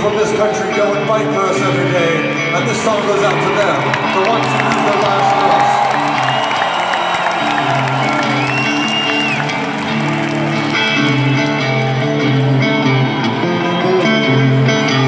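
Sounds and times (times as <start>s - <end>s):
crowd noise: 0.0s - 15.0s
live rock band with electric guitar: 0.0s - 15.0s.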